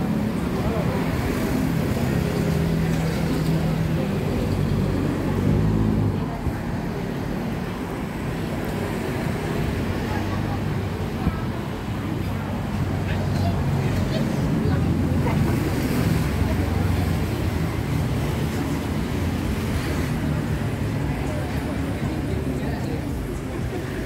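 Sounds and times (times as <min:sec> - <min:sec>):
street traffic: 0:00.0 - 0:24.0.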